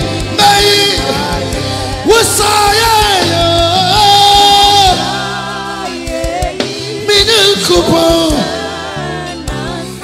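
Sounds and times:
man singing: 0.0 - 5.2, 6.8 - 8.7
low drum beat: 0.0 - 5.4
band chords: 0.0 - 10.0.

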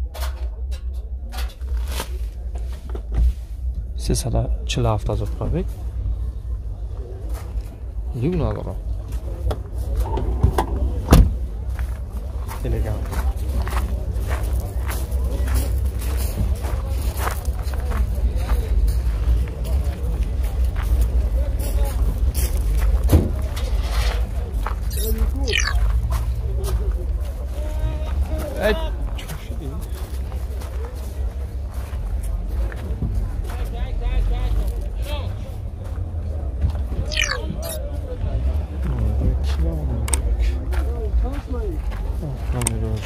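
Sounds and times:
people talking: 0.0 - 43.0
voices murmuring faintly: 0.0 - 43.0
steady low rumble: 0.6 - 23.6
footsteps on gravel: 11.7 - 20.0.

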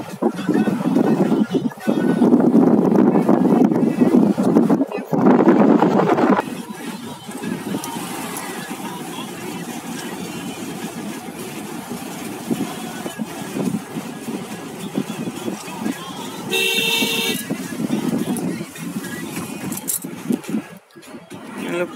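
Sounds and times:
road and wind rumble in car: 0.0 - 21.9
vehicle horn: 16.4 - 17.5.

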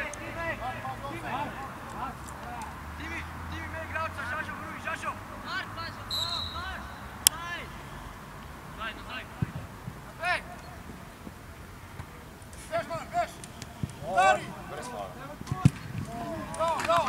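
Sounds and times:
distant shouts of players: 0.0 - 10.9, 12.6 - 17.0.

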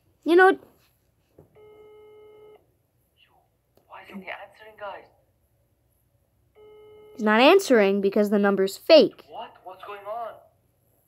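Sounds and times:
phone ringback tone: 1.6 - 2.6, 6.6 - 7.2.

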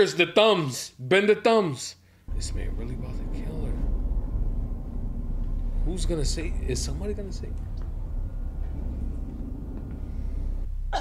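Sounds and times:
low steady rumble: 2.2 - 11.0.

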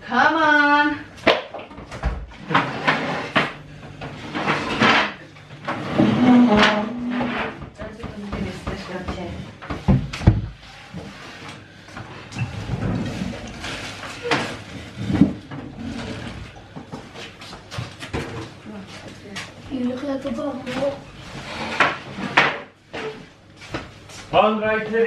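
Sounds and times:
knocks and bumps: 1.3 - 10.6.

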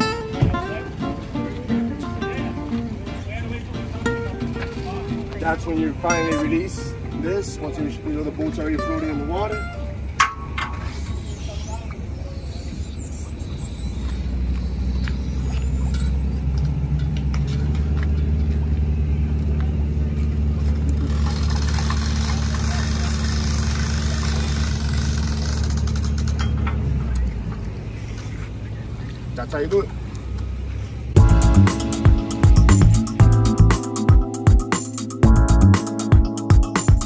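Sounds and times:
vehicle engine running: 0.7 - 37.0.

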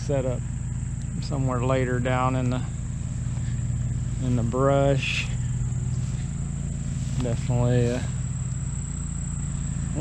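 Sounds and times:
low rumble: 0.0 - 10.0
shrill insect chorus: 0.0 - 10.0.

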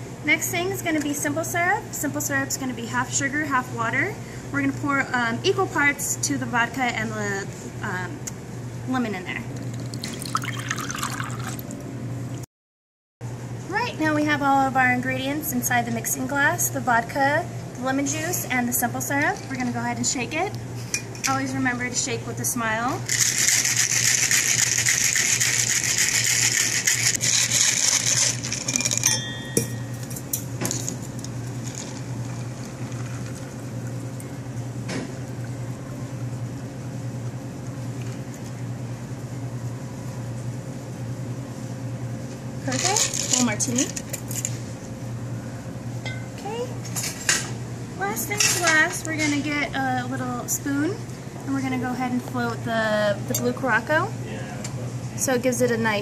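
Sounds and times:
liquid pouring into glass: 9.6 - 11.8
ice rattling in cocktail shaker: 9.7 - 11.6, 23.1 - 29.1.

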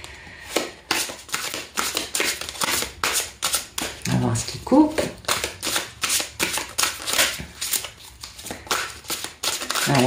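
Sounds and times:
cards being shuffled: 0.5 - 4.2, 4.9 - 10.0.

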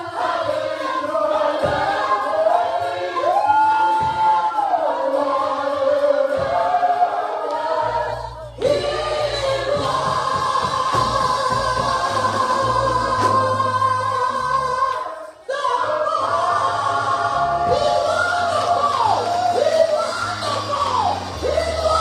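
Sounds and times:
gospel singing held notes: 0.0 - 22.0
low bass accompaniment: 7.7 - 14.9.

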